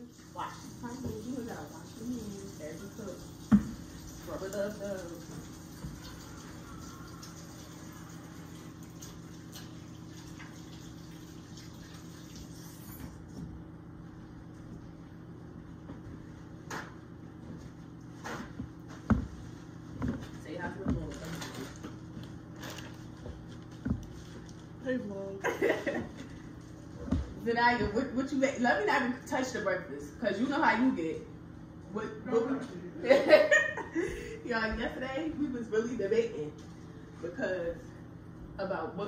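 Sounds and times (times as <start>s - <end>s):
steady appliance hum: 0.0s - 39.0s
tap running into sink: 2.9s - 4.6s.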